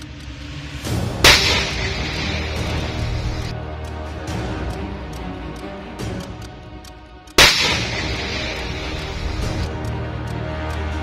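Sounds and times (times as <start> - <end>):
background music: 0.0 - 11.0
rifle shot: 1.2 - 3.5, 7.4 - 9.7.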